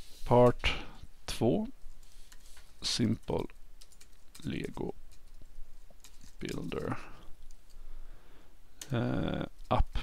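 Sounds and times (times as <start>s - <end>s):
keyboard keys clicking: 3.3s - 5.3s.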